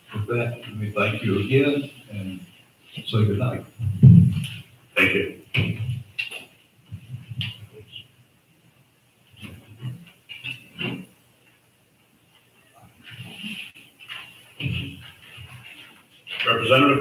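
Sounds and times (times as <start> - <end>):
movement noises: 0.0 - 8.1, 9.3 - 17.0.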